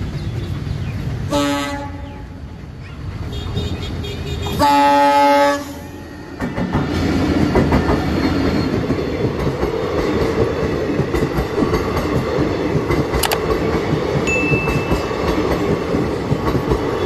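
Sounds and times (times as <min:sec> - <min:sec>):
train coaches rumbling: 0:00.0 - 0:17.0
locomotive horn blast: 0:01.3 - 0:02.2, 0:03.3 - 0:05.9
wheels clicking over rail joints: 0:06.4 - 0:17.0.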